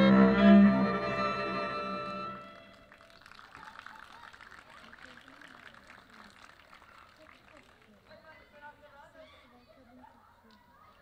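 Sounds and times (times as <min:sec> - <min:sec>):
audience applause: 0:02.0 - 0:08.2.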